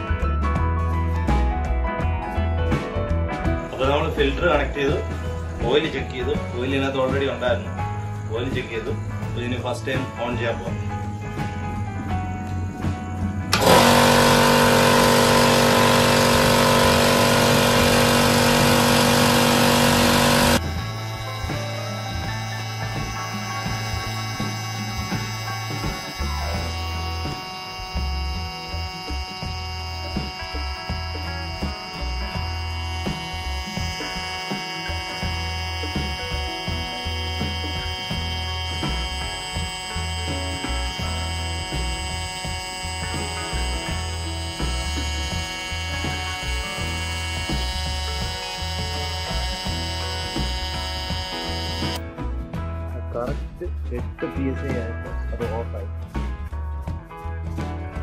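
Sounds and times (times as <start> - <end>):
background music with beat: 0.0 - 58.0
air compressor running: 13.5 - 52.0.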